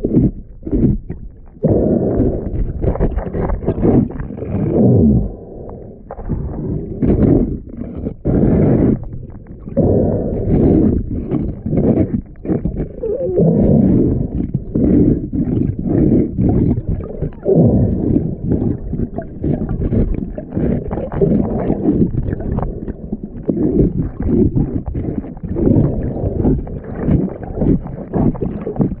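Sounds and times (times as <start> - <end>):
muffled underwater noise: 0.0 - 29.0.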